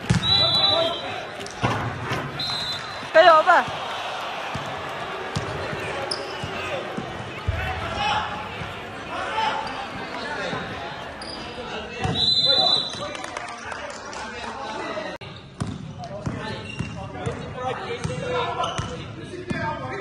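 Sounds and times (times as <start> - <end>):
basketball bouncing on court: 0.0 - 0.5, 15.6 - 19.6
players calling out: 0.0 - 13.1.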